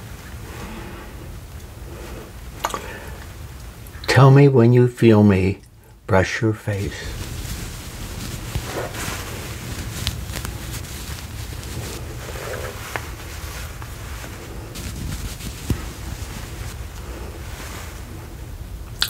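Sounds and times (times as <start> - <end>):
brush swishing over microphone: 6.7 - 18.6.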